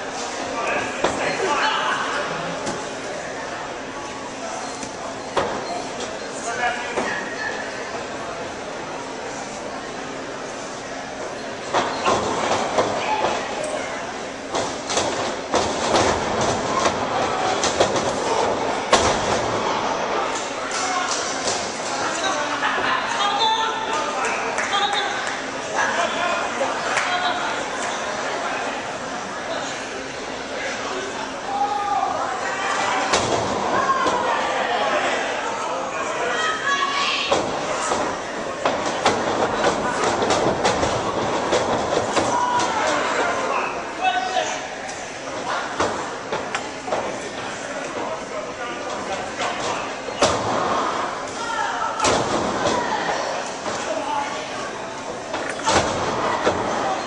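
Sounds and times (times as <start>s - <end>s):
crowd noise: 0.0s - 57.0s.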